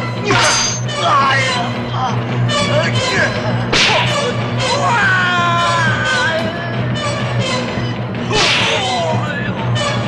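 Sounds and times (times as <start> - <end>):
film music score: 0.0 - 10.0
wooden staff swish-crack: 3.8 - 4.1.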